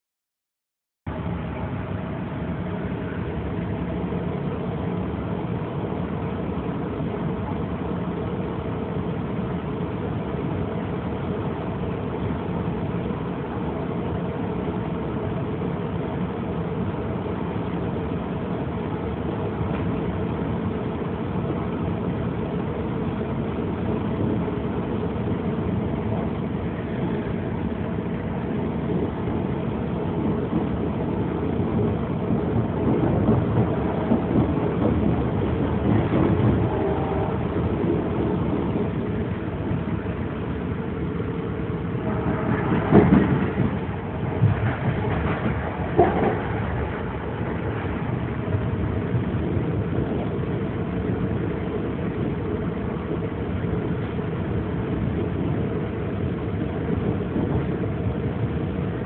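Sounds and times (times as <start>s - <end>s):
train running from inside car: 1.1s - 59.0s.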